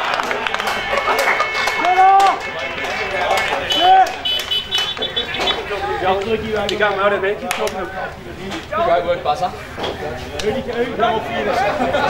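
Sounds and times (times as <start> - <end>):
football ground noise: 0.0 - 12.0.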